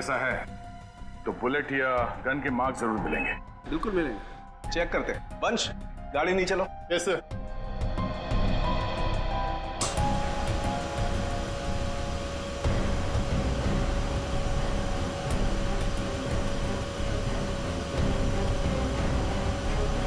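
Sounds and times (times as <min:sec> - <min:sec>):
low rumbling drone score: 0:07.4 - 0:20.0.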